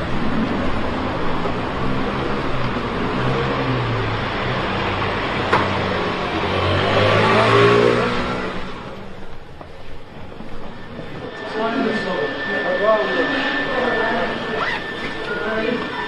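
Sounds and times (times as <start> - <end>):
vehicle passing: 0.0 - 15.9.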